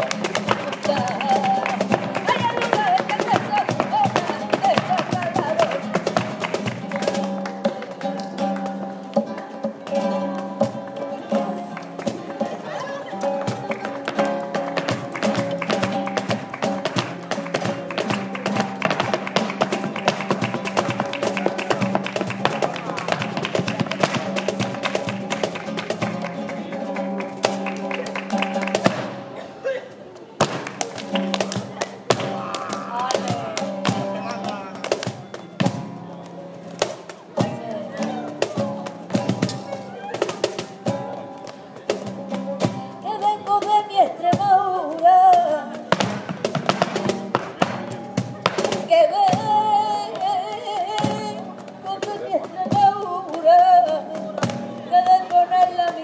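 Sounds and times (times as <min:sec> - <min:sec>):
hand-clapping: 0:00.0 - 0:09.5, 0:13.2 - 0:29.3, 0:30.4 - 0:35.5
cajon: 0:00.0 - 0:56.0
nylon-string guitar playing: 0:00.0 - 0:56.0
person singing: 0:32.2 - 0:34.8, 0:42.7 - 0:45.9, 0:48.8 - 0:56.0
footwork stamping on dance board: 0:45.9 - 0:48.7.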